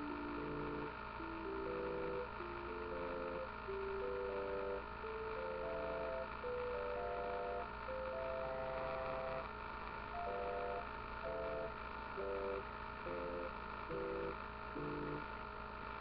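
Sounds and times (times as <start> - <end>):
low hum: 0.0 - 9.5, 10.1 - 15.4.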